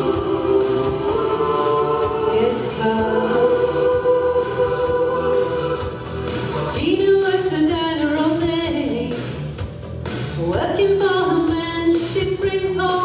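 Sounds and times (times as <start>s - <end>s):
choir singing held chords: 0.0s - 6.7s.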